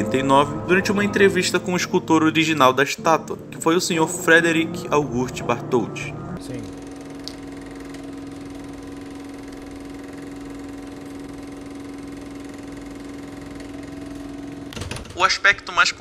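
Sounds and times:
electrical hum: 0:00.0 - 0:16.0.

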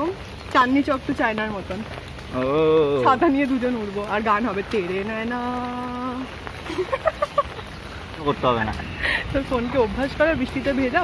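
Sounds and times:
rain on an umbrella: 0:00.0 - 0:11.0
people talking: 0:02.4 - 0:06.3, 0:08.2 - 0:11.0.

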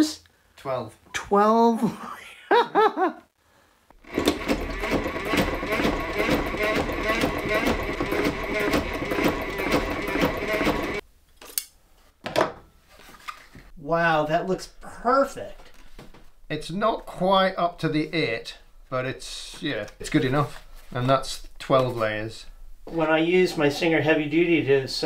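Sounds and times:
sewing machine clicks: 0:04.0 - 0:11.0
sewing machine needle clatter: 0:04.1 - 0:11.0.

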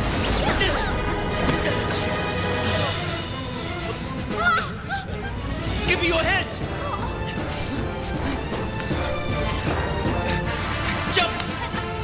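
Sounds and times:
soundtrack music: 0:00.0 - 0:12.0.

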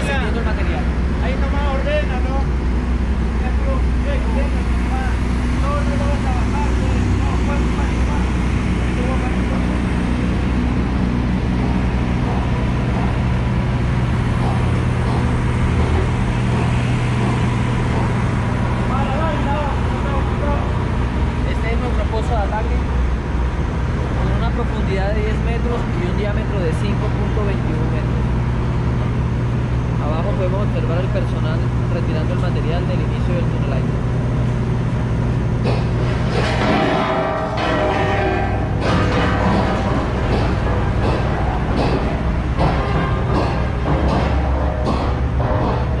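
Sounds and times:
low engine drone: 0:00.0 - 0:46.0.

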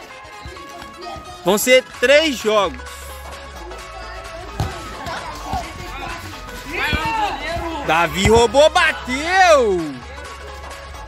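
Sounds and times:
background music: 0:00.0 - 0:11.0
voices: 0:03.7 - 0:10.2
ball thudding on concrete: 0:04.5 - 0:08.8.

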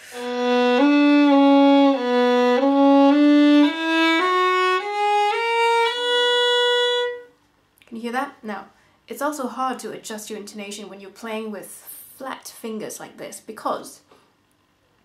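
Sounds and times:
solo violin playing a scale: 0:00.0 - 0:07.3.

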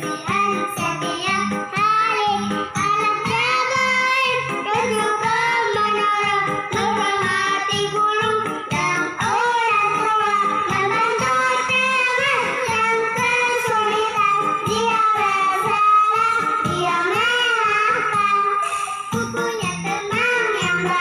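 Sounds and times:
child singing over music: 0:00.0 - 0:21.0.

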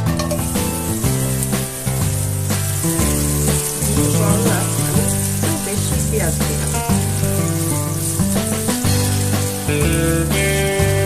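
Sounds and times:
background music: 0:00.0 - 0:11.0
onions sizzling in oil: 0:00.2 - 0:11.0
wooden spatula stirring: 0:00.2 - 0:11.0.

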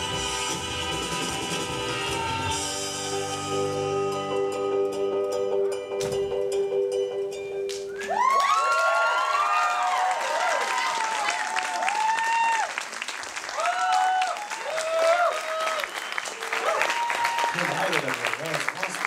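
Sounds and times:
whoops and cheers: 0:01.9 - 0:02.8, 0:07.9 - 0:17.8
audience applauding: 0:07.8 - 0:19.0.

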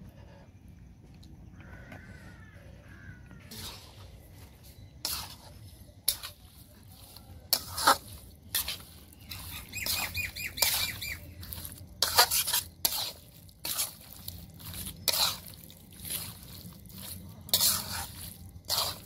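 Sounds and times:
metal spoon scraping iron pan: 0:05.0 - 0:19.0.

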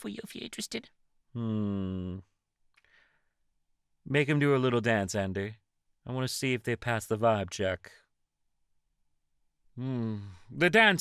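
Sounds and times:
person humming: 0:01.4 - 0:02.2.

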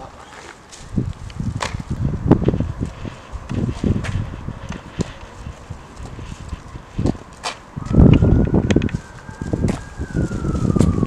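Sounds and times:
footsteps on pavement: 0:00.0 - 0:11.0
wind rumble on microphone: 0:00.7 - 0:11.0
distant siren wail: 0:02.0 - 0:11.0.

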